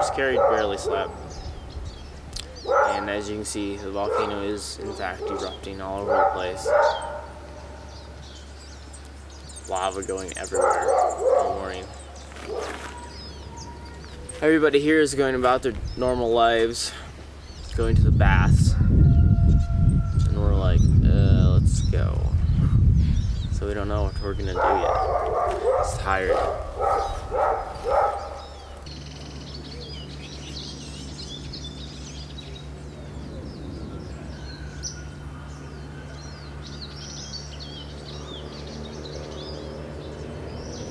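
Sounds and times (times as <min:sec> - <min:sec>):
low outdoor background hum: 0:00.0 - 0:40.9
small birds chirping: 0:00.0 - 0:40.9.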